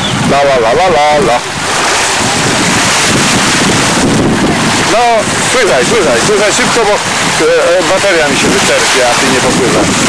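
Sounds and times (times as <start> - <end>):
shallow sea water washing: 0.0 - 10.0
wind rushing over microphone: 0.0 - 10.0.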